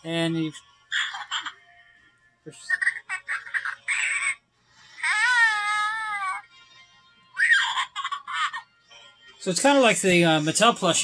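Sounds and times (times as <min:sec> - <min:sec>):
toy high-pitched baby creature noises: 0:00.9 - 0:01.6, 0:02.6 - 0:04.4, 0:05.0 - 0:06.5, 0:07.3 - 0:08.6.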